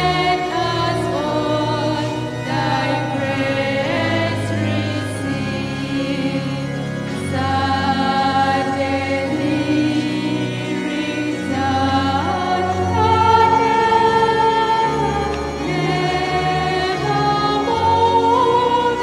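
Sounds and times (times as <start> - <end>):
choir singing a hymn: 0.0 - 19.0
held low accompaniment notes: 0.0 - 19.0.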